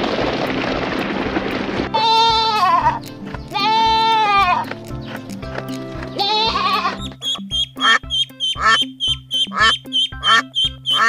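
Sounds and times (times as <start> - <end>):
background music with beat: 0.4 - 11.0
goat bleating: 2.0 - 4.8, 5.8 - 7.2.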